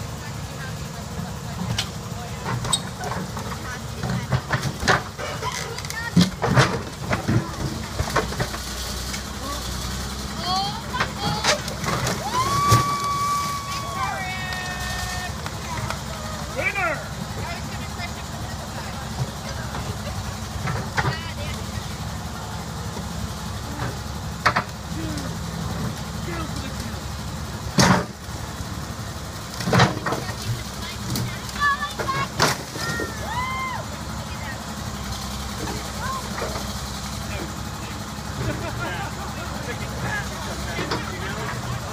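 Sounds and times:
backhoe engine running: 0:00.0 - 0:41.9.

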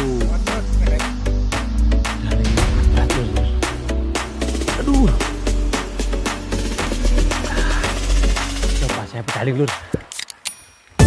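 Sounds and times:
person's voice: 0:00.0 - 0:01.1, 0:04.8 - 0:05.3
electronic music: 0:00.0 - 0:09.7.

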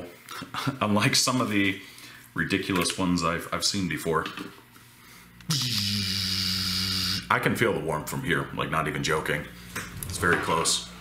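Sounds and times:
electrical hum with hiss: 0:00.0 - 0:11.0.

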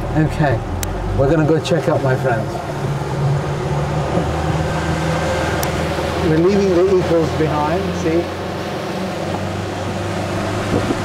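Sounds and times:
outboard motor droning: 0:00.0 - 0:11.0
water rushing: 0:00.0 - 0:11.0
wind: 0:00.0 - 0:11.0.

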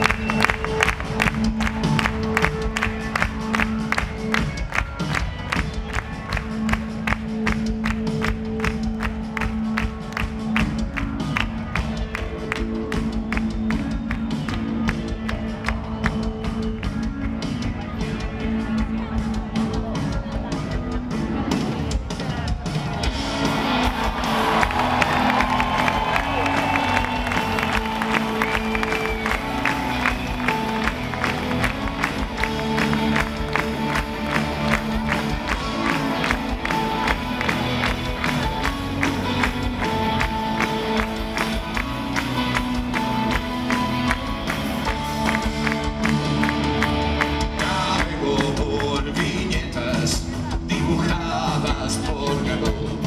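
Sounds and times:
crowd noise: 0:00.0 - 0:53.0
live rock band playing: 0:00.0 - 0:53.0
steady drum beat: 0:00.0 - 0:53.0.

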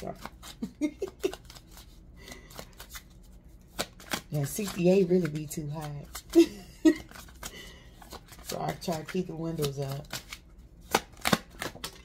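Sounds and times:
cards being shuffled: 0:00.0 - 0:12.0
sharp card snap: 0:10.9 - 0:12.0.

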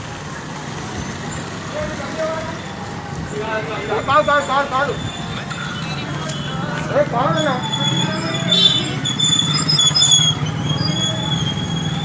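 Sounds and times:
people's voices: 0:00.0 - 0:12.0
steady background noise: 0:00.0 - 0:12.0.

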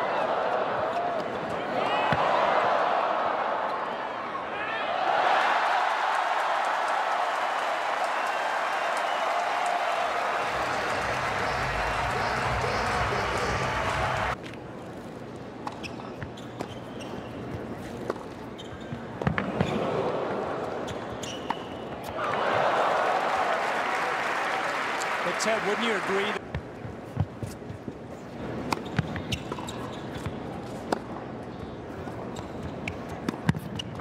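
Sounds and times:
crowd cheering and applauding: 0:05.0 - 0:14.4, 0:22.2 - 0:26.4.

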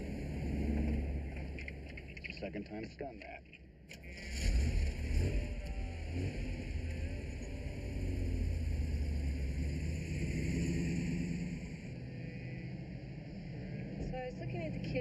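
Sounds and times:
deep low rumble: 0:04.0 - 0:15.0.

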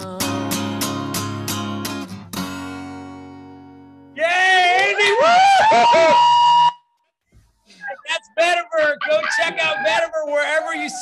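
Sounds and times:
people whooping and cheering: 0:04.2 - 0:06.8, 0:09.0 - 0:11.0.

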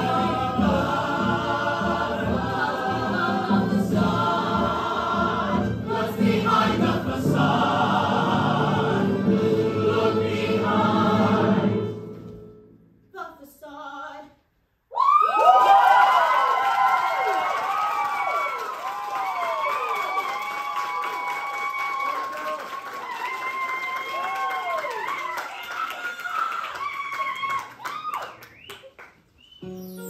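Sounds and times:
whoops and shouts: 0:14.9 - 0:28.6
audience applause and cheering: 0:15.0 - 0:29.4.

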